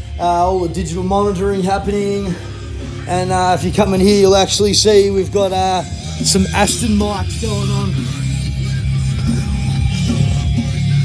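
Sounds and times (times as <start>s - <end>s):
hip hop beat with heavy bass: 0.0s - 11.0s.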